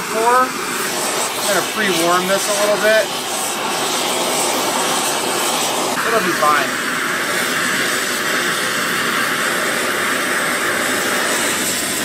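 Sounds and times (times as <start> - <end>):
gas torch flame rushing: 0.0 - 12.0.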